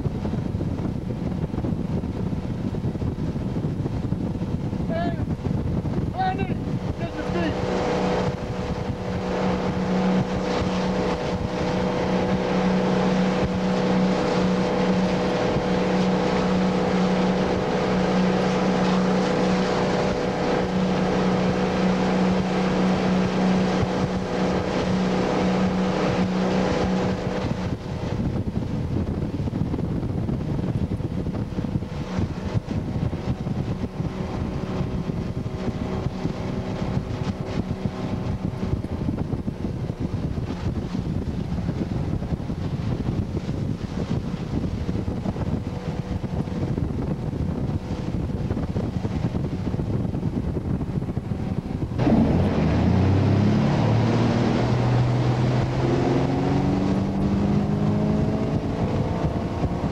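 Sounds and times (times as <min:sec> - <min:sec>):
boat motor droning: 0:00.0 - 0:59.9
water rushing: 0:00.0 - 0:59.9
wind: 0:00.0 - 0:59.9.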